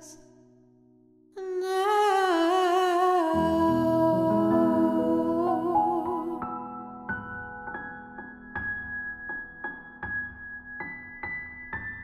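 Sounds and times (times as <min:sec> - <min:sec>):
soft piano chord: 0:03.2 - 0:12.0.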